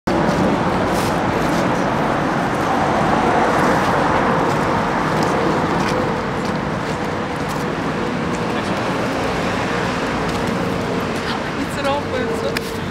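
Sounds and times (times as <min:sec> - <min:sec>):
road traffic noise: 0:00.1 - 0:12.9
people's voices: 0:00.4 - 0:12.9.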